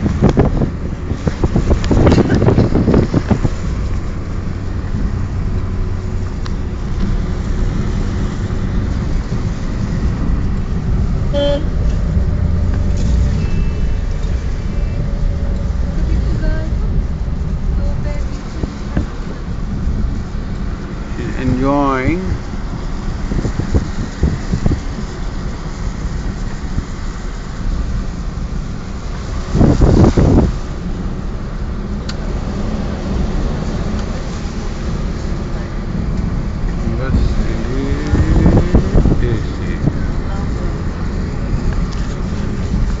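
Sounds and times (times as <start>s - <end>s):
car engine and road noise: 0.0s - 43.0s
rushing surge: 2.7s - 23.2s.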